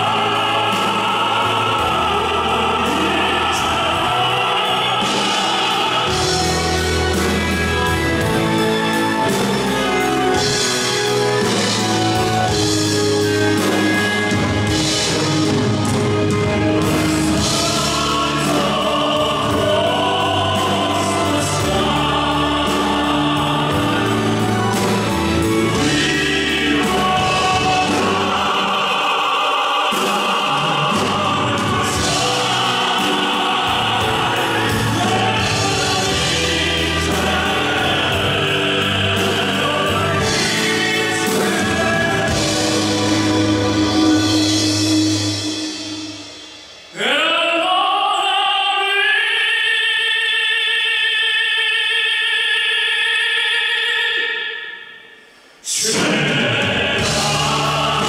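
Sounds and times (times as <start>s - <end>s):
live band playing: 0.0s - 47.0s, 56.0s - 58.0s
people singing long held notes: 0.0s - 58.0s.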